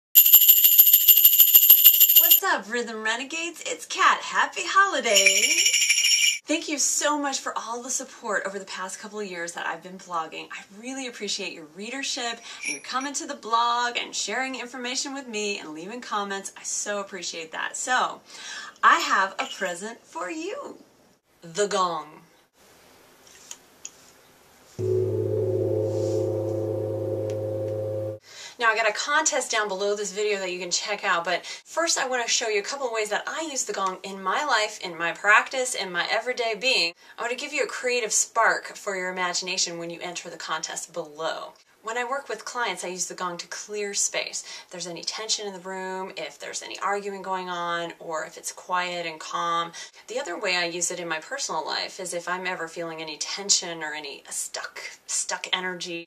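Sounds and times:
high steady tones: 0.2s - 2.4s, 24.8s - 28.2s
small metal bell trilling: 0.2s - 2.4s, 5.2s - 6.4s, 12.5s - 13.0s
metal gong ringing: 24.8s - 28.2s.

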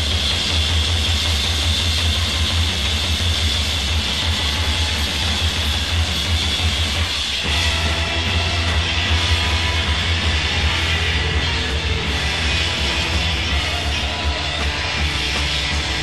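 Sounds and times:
electric guitars playing: 1.7s - 16.0s
low throbbing drone rumble: 7.5s - 16.0s.

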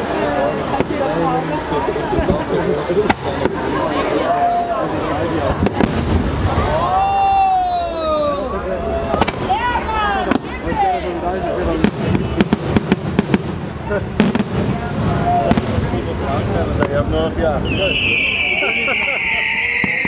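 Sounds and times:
fireworks bursting: 0.0s - 8.0s, 9.0s - 20.0s.

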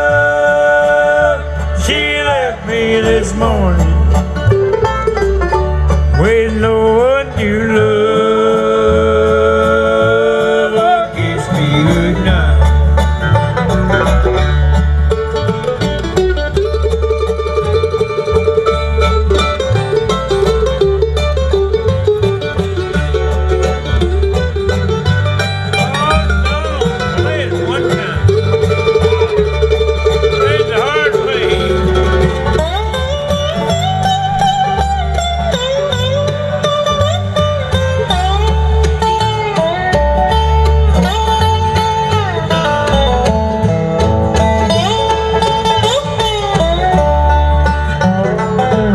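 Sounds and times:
acoustic guitar: 0.0s - 48.9s
banjo: 0.0s - 48.9s
dobro: 0.0s - 48.9s
mandolin: 0.0s - 48.9s
upright bass: 0.0s - 48.9s.

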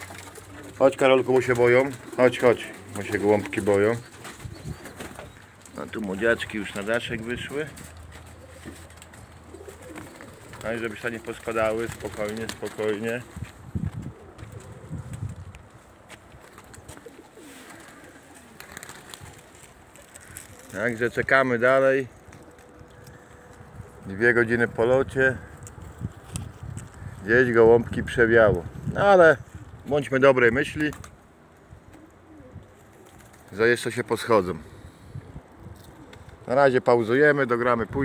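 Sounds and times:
pigeons cooing: 0.0s - 25.9s, 31.5s - 36.8s.

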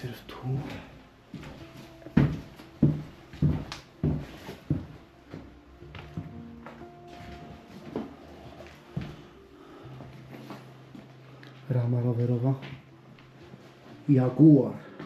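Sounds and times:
quiet background music: 0.0s - 15.0s
footsteps: 0.5s - 14.1s.

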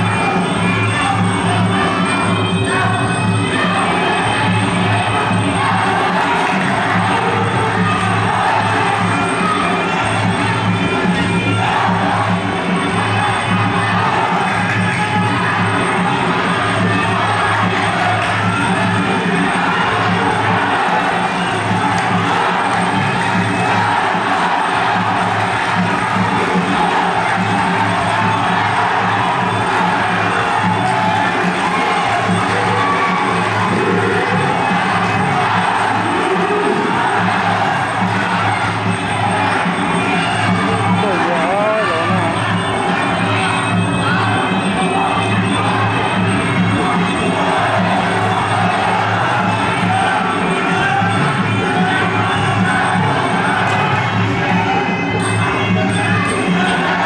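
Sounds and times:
crowd cheering and shouting: 0.0s - 57.0s.

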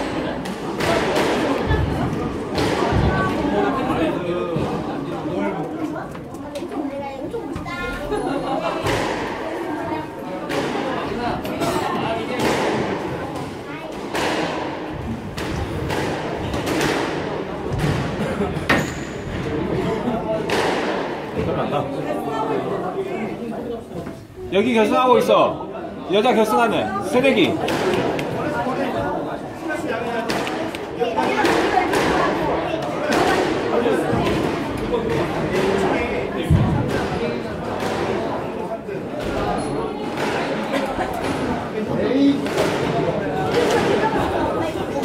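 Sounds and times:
spectators chattering: 0.0s - 45.0s
squash ball hit by racquets: 13.9s - 18.9s, 30.2s - 32.4s.

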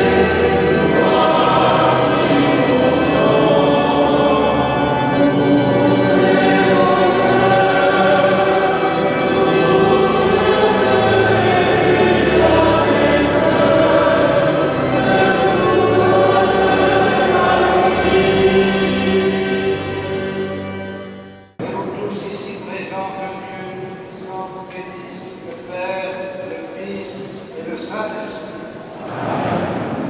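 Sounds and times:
choir chanting with echo: 0.0s - 20.6s, 26.2s - 30.0s.

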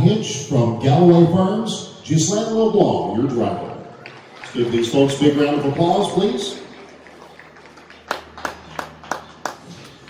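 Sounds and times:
hand clapping: 6.6s - 10.0s.

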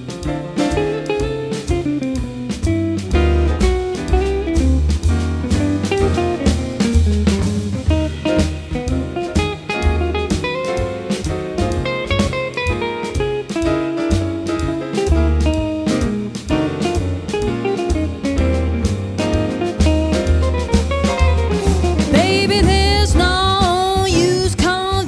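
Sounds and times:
jazz quartet playing: 0.0s - 25.0s.

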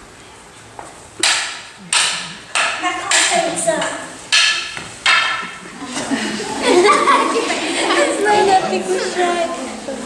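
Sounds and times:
wooden sticks clacking: 1.2s - 5.6s.

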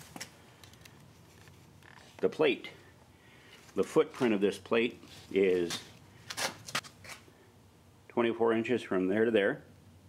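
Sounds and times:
scuffing and rustling: 3.4s - 7.3s.

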